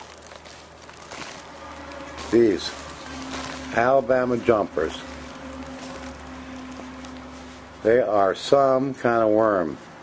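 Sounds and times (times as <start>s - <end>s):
low steady hum: 0.0s - 9.1s
hands rustling moist bedding: 0.0s - 10.0s.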